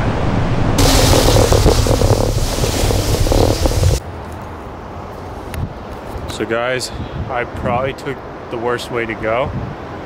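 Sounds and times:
wind buffeting microphone: 0.8s - 4.0s.

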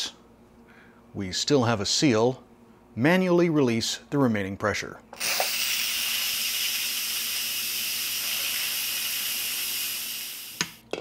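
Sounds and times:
steam hissing from valve: 5.2s - 10.8s.

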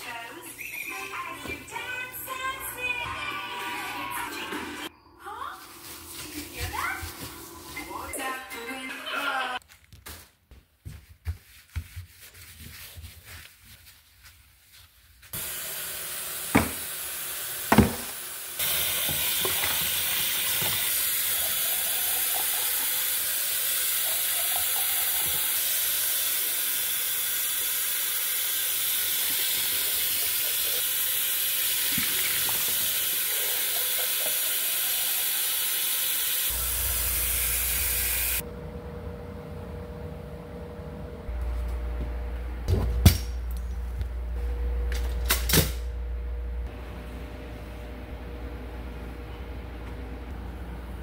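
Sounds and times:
tap water running into a cup: 15.4s - 38.4s.

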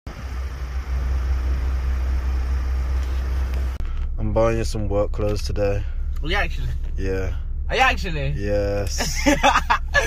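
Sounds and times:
road traffic rumble: 0.1s - 10.0s.

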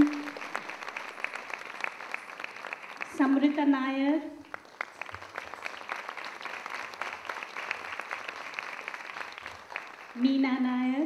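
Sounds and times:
audience applauding: 0.0s - 3.7s, 4.4s - 10.4s.

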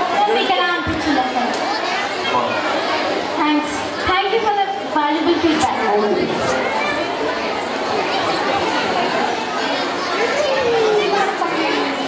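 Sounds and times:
children and adults talking: 0.0s - 12.0s.

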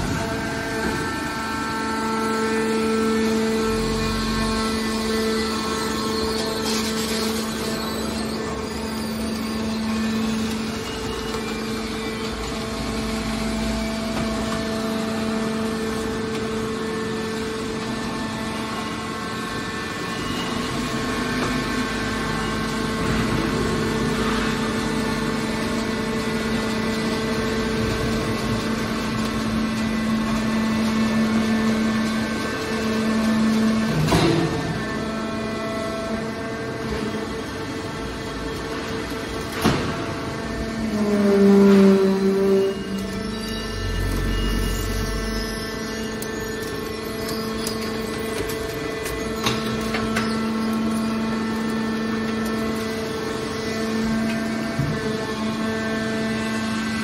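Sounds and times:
hydraulic baler humming: 0.0s - 57.0s.

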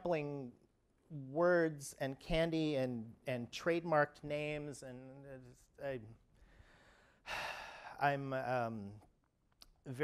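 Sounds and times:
man sighing: 6.4s - 8.0s.

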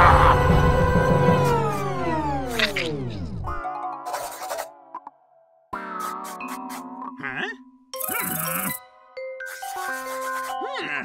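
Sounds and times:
light background music: 5.7s - 11.0s
pen scribbling on paper: 9.5s - 10.6s.

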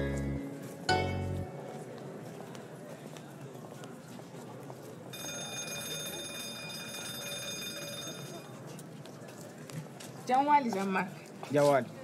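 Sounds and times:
bell ringing on high tones: 5.2s - 8.5s.

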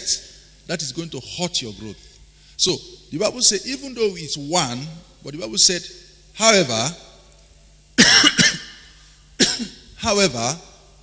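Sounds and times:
man coughing into microphone: 8.0s - 9.9s.

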